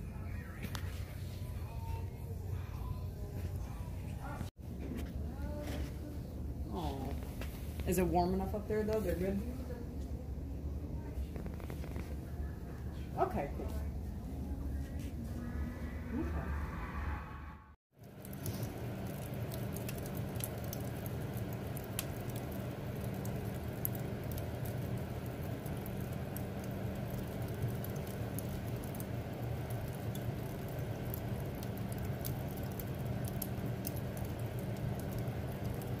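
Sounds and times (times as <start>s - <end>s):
wood fire crackling: 0.0s - 10.2s, 11.0s - 15.6s, 18.0s - 36.0s.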